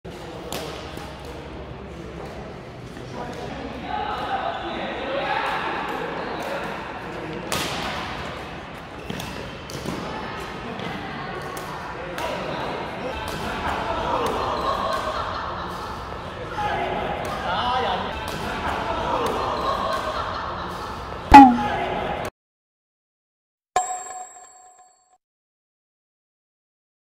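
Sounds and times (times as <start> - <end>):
rackets hitting shuttlecock: 21.3 - 21.7.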